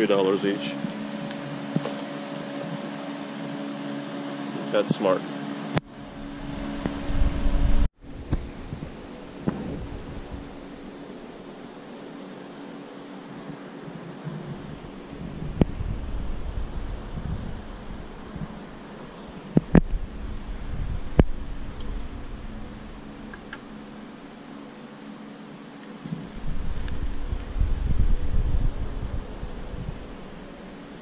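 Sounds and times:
machine hum with rushing noise: 0.0 - 31.0
loud rumble: 5.8 - 11.7, 14.3 - 24.5, 26.3 - 31.0.

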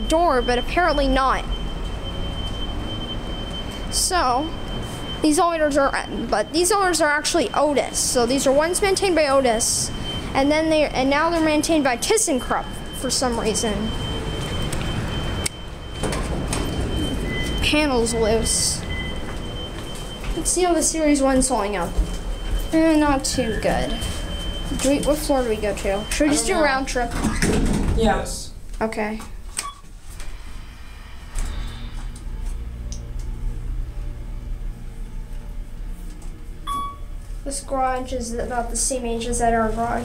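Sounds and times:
elevator low hum: 0.0 - 27.2, 29.9 - 40.0
short high electronic tone: 36.6 - 37.2.

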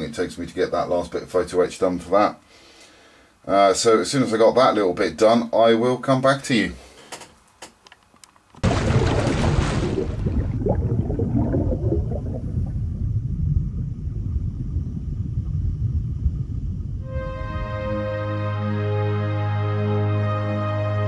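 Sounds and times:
underwater splash: 8.6 - 15.0
low rumble of churning bubbles: 8.6 - 17.1.

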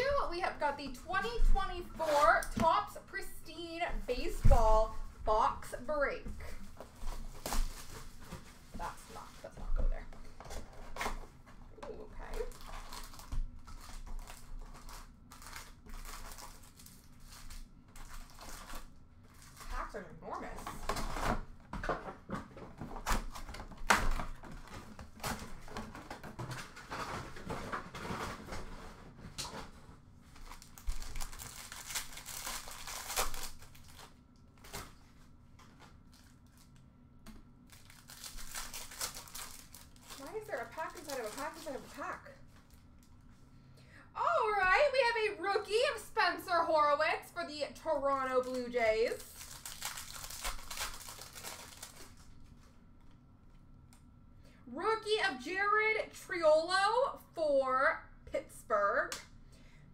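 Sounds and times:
plastic wrappers crinkling and tearing: 1.1 - 5.1, 6.4 - 9.6, 10.3 - 43.2, 48.2 - 52.8
cardboard rustling: 1.1 - 5.5, 6.4 - 9.6, 12.3 - 36.7, 37.7 - 42.8.

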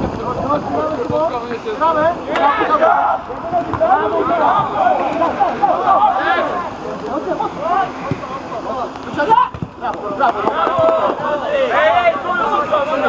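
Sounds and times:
players calling and shouting: 0.0 - 13.0.

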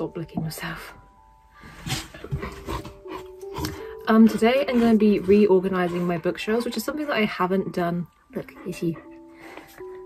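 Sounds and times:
quiet background music: 0.0 - 10.0.

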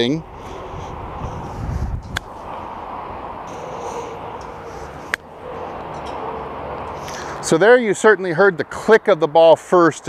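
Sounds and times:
outdoor background hum: 0.0 - 9.0.

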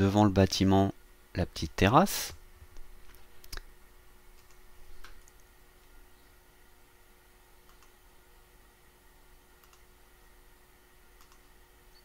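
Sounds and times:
faint hum: 0.0 - 12.0
computer mouse click: 4.4 - 5.5, 7.6 - 8.0, 9.6 - 9.9, 11.2 - 11.5.

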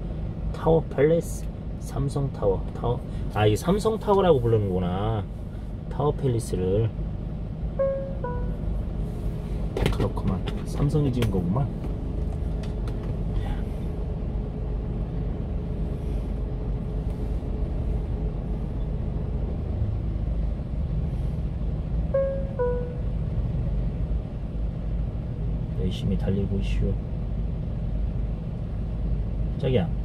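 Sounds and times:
diesel truck engine idling: 0.0 - 30.0
two-note falling chime: 7.8 - 8.6, 22.2 - 23.0.

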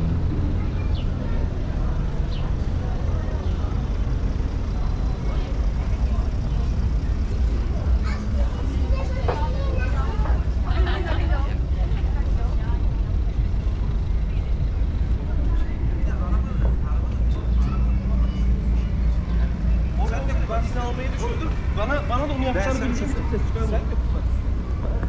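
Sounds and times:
low traffic rumble: 0.0 - 25.0
passers-by talking: 0.0 - 25.0.

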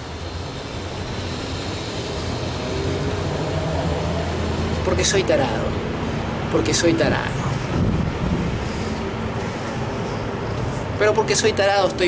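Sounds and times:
distant engine droning: 0.0 - 12.0.

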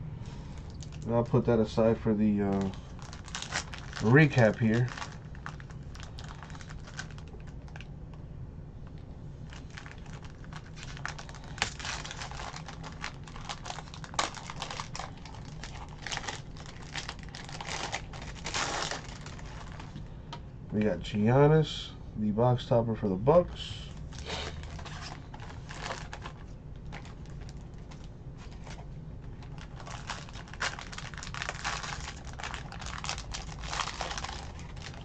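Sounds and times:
plastic wrapper crinkling and tearing: 0.6 - 7.9, 9.4 - 20.0, 23.9 - 35.0.

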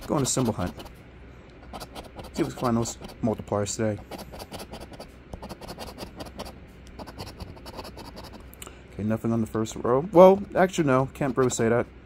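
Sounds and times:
coin scraping scratch-off ticket: 0.0 - 0.9, 1.6 - 3.4, 4.0 - 8.4.

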